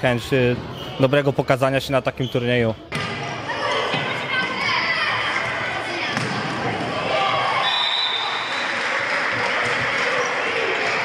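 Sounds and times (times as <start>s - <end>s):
children shouting: 3.4s - 11.0s.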